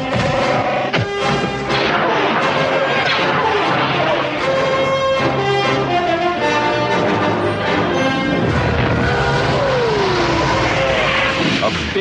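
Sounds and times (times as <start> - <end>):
falling whine: 7.6 - 12.0
spacecraft engine roar: 7.9 - 12.0.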